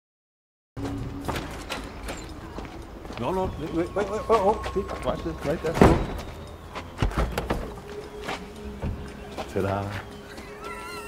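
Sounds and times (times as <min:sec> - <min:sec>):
footsteps on pavement: 0:00.8 - 0:11.0.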